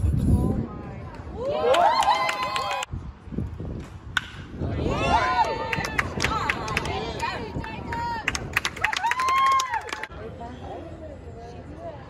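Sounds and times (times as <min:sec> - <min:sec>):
spectators shouting and cheering: 0:01.2 - 0:02.9, 0:04.6 - 0:10.1.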